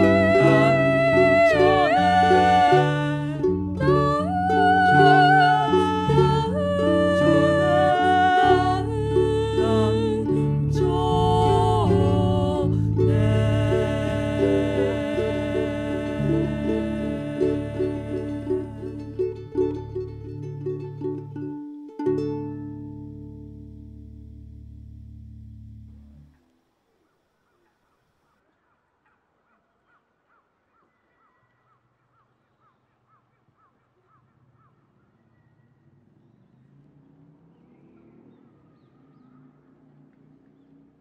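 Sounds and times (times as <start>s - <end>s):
ukulele and bass guitar playing: 0.0s - 26.3s.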